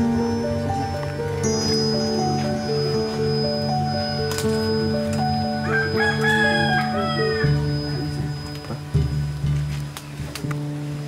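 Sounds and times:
background music: 0.0 - 11.0
rooster crowing: 5.6 - 7.9.

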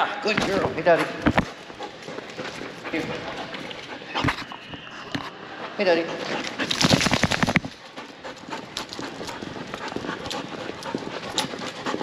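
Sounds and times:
dog knocks and scuffs: 0.3 - 4.5, 6.2 - 12.0.

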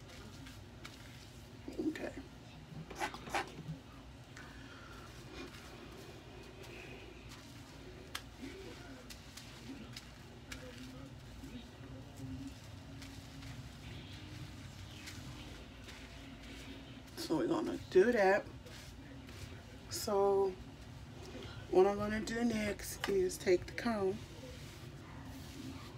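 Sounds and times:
low steady hum: 0.0 - 25.9
television voices: 0.0 - 25.9.

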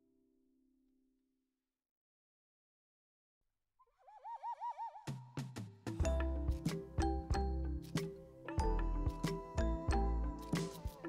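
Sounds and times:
warbling whistle-like tone: 4.0 - 5.2.

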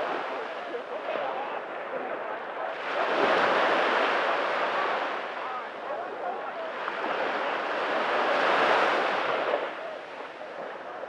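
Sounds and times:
small wave washing on sand: 0.0 - 11.0.

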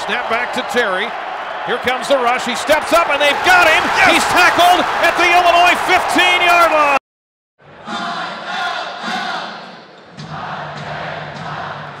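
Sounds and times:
crowd chanting in unison: 7.7 - 12.0.

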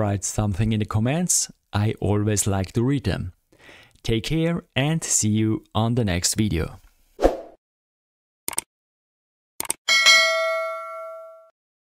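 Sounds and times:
bright bell ding: 9.9 - 11.5.

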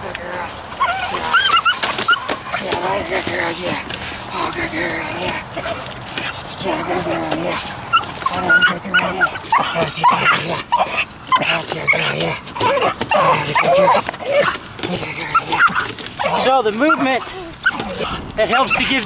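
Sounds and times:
dog whining and yelping: 0.7 - 3.0, 6.8 - 18.9.

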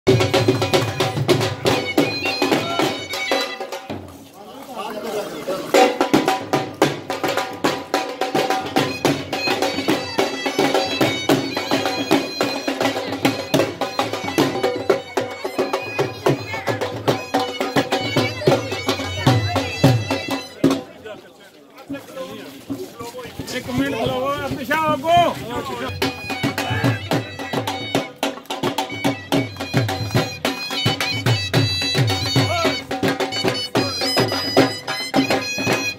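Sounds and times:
dhol drum beating: 0.1 - 4.2, 5.6 - 21.1, 21.9 - 35.9
wind instrument melody: 0.1 - 4.4, 5.7 - 21.2, 22.2 - 35.9.

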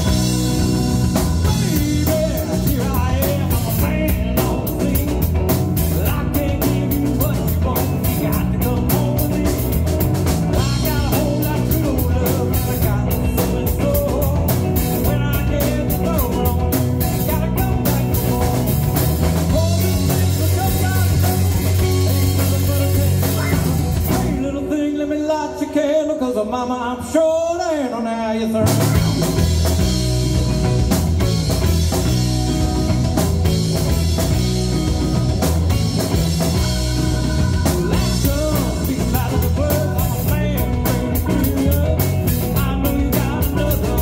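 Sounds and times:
rock band playing instrumental: 0.0 - 25.2, 28.6 - 44.0
guitar ringing: 28.8 - 42.8.

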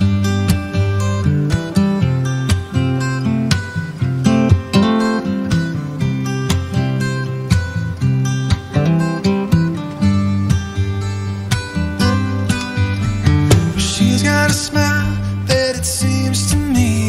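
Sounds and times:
acoustic guitar picking: 0.0 - 17.0.

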